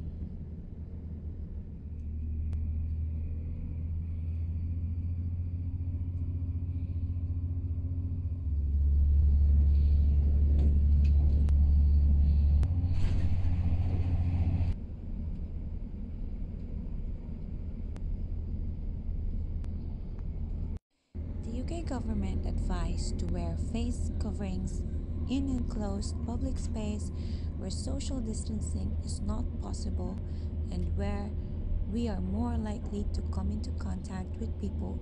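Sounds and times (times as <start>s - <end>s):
train rumbling inside carriage: 0.0s - 35.0s.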